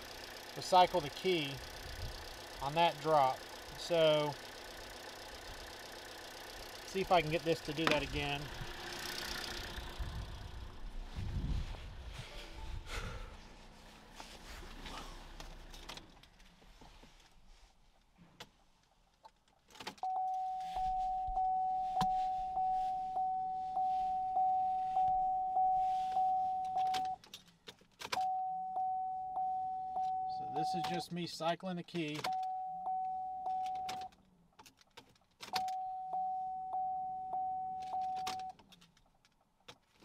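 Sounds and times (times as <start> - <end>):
rustling: 13.4 - 19.8
dashboard warning chime: 20.0 - 27.2, 28.2 - 31.1, 32.3 - 34.1, 35.6 - 38.6.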